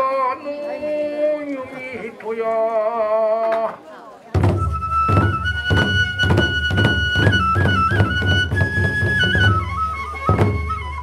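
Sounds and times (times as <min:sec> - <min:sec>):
barrel drums beating: 0:04.4 - 0:11.0
bamboo flute high note: 0:04.5 - 0:11.0.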